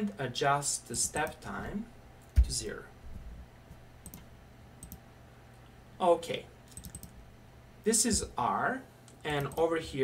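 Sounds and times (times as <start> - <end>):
computer mouse clicks: 3.7 - 5.0, 6.7 - 7.2.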